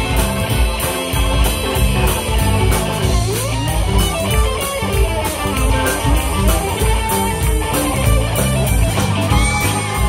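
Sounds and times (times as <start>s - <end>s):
blues rock band playing: 0.0s - 10.0s
electric guitar lead: 0.0s - 10.0s.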